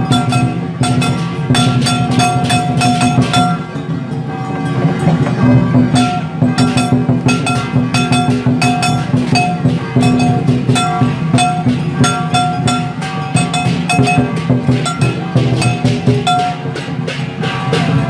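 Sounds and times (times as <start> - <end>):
cymbals crashing: 0.0 - 18.0
large drum beating: 0.0 - 18.0.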